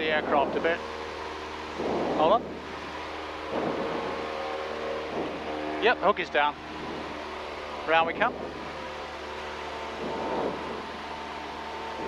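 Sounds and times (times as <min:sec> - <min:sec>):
propeller aircraft engine droning: 0:00.0 - 0:12.0.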